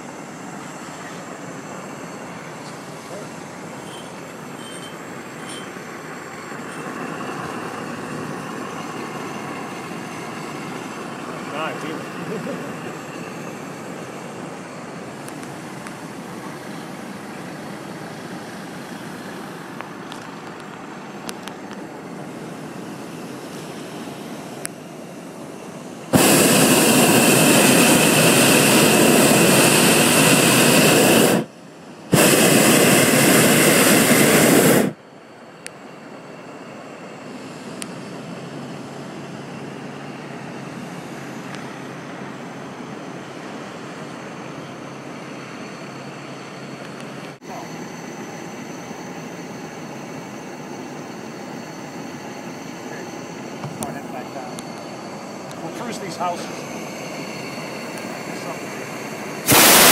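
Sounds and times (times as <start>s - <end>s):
propane burner roaring: 0.0s - 59.9s.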